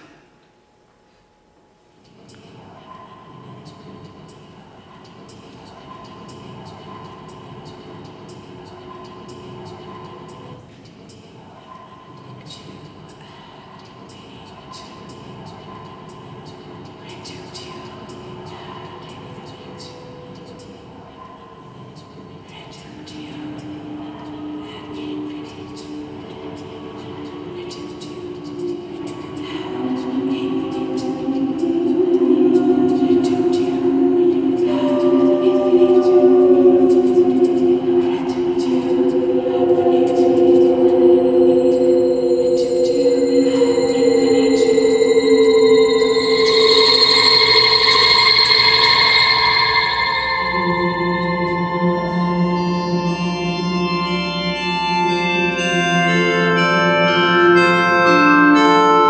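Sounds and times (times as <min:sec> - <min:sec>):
choir-like vocal drone: 0:00.0 - 0:00.2, 0:02.1 - 0:59.0
faint steady held tone: 0:11.4 - 0:59.0
hissing consonant sounds: 0:12.5 - 0:59.0
thin high whine: 0:12.8 - 0:59.0.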